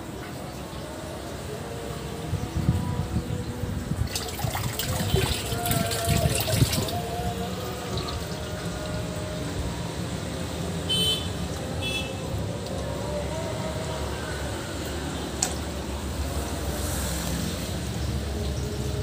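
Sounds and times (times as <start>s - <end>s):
water pouring into a pond: 4.0s - 8.4s.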